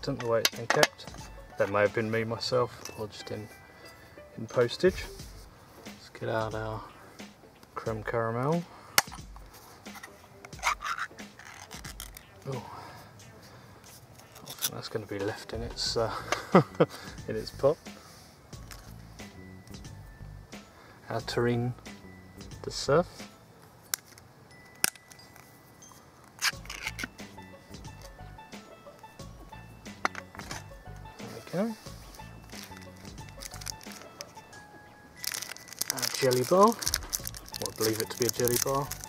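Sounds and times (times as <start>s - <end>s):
soft background music: 0.0s - 39.0s
ring-pull lid peeled off tin: 0.2s - 1.8s, 9.9s - 12.5s, 14.2s - 14.8s, 26.2s - 27.4s, 29.9s - 30.7s, 32.5s - 34.5s, 35.2s - 39.0s.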